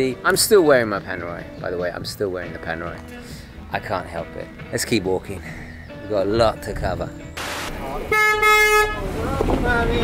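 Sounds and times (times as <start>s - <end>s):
vehicle horn honk: 8.1s - 9.1s.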